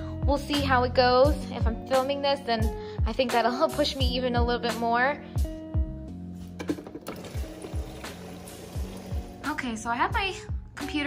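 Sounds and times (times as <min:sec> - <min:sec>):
music with regular beat: 0:05.4 - 0:11.0
water pouring into plastic bottle: 0:06.8 - 0:09.4.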